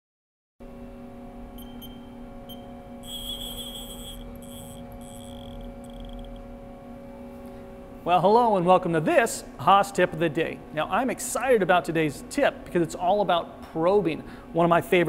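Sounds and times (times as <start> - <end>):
high-pitched machine whines: 1.5 - 6.8
milling machine humming: 1.5 - 7.0.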